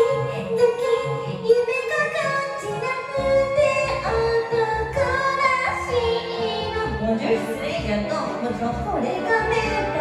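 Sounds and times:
backing track: 0.0 - 10.0
woman singing karaoke: 0.0 - 10.0.

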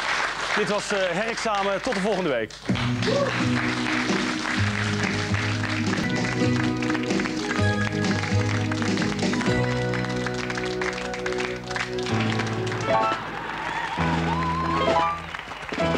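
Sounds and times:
tv theme music with held chords: 2.6 - 15.9.

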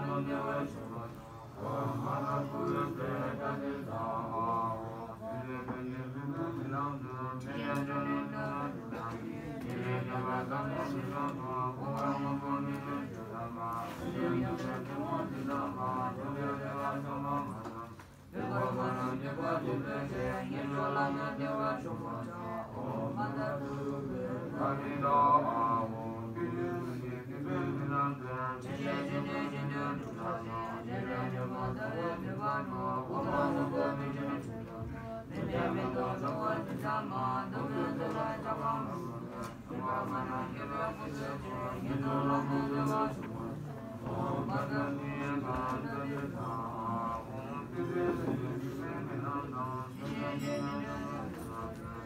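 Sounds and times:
low male voices chanting: 0.0 - 52.0.

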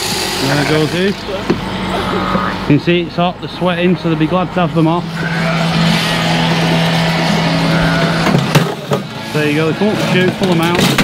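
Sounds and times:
electric shearing machine humming: 0.0 - 2.8, 3.7 - 10.9.

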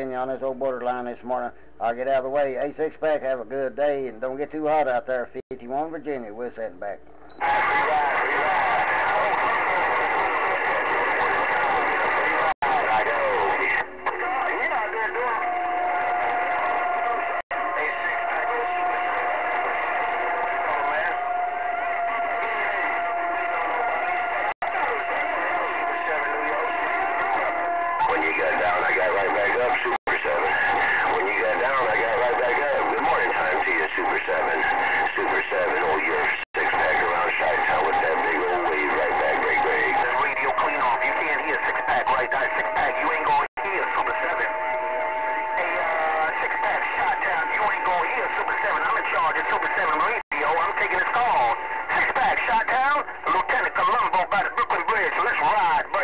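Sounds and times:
garbled radio voices: 6.4 - 56.0
radio whistle tones: 10.7 - 55.7.

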